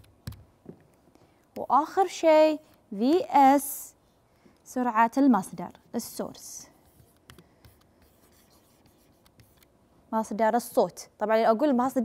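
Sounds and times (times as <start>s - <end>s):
stylus scratching on tablet: 5.9s - 9.7s.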